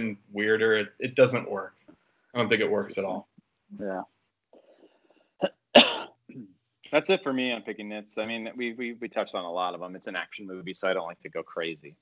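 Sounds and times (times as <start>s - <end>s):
man coughing: 5.8s - 6.1s.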